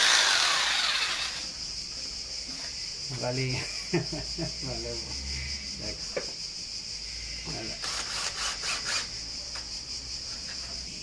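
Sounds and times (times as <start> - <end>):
cordless drill grinding: 0.0 - 1.5, 7.8 - 9.1
cicadas buzzing: 0.0 - 11.0.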